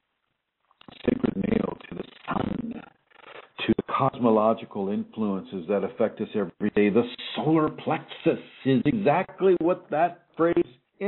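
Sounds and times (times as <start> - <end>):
man's hesitation sound: 0.8 - 4.1, 6.6 - 10.7.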